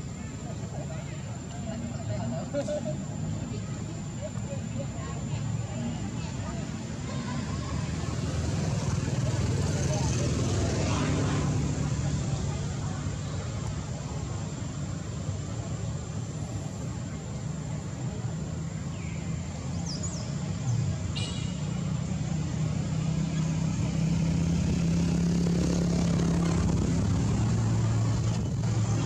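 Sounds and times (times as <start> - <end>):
motor vehicle passing: 21.2 - 29.0.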